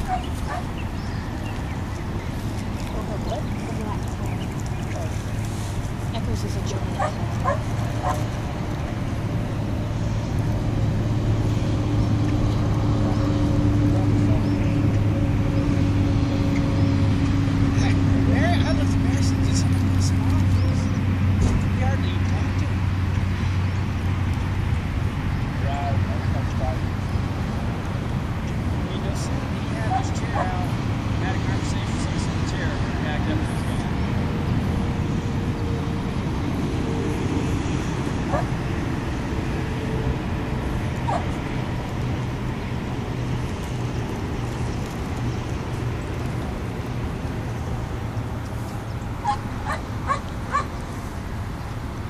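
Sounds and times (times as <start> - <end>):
dog yipping: 0.0 - 0.7, 7.0 - 8.2, 38.3 - 38.5, 41.1 - 41.3, 49.2 - 50.7
highway traffic rumble: 0.0 - 52.0.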